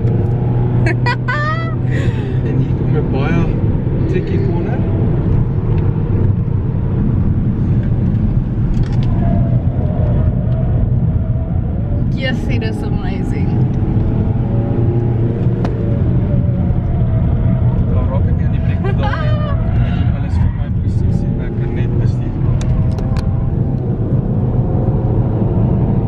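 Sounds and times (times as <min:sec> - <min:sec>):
car engine and road rumble: 0:00.0 - 0:26.0
passengers laughing: 0:00.9 - 0:02.8, 0:18.5 - 0:20.1
passengers talking: 0:00.9 - 0:03.5, 0:18.1 - 0:22.8.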